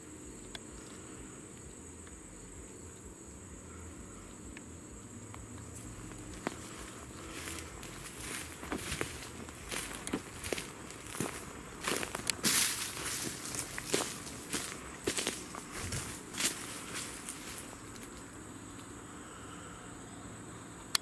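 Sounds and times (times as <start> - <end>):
footsteps on dry leaves and twigs: 5.7 - 18.3.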